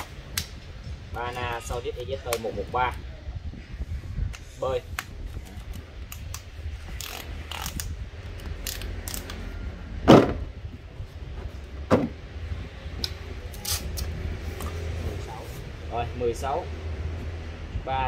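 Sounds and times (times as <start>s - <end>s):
case shutting knock: 10.1s - 10.4s, 11.9s - 12.2s.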